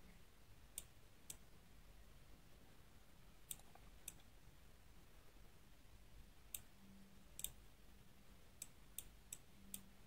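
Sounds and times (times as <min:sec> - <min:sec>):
computer mouse clicks: 0:03.4 - 0:04.3, 0:07.4 - 0:07.6.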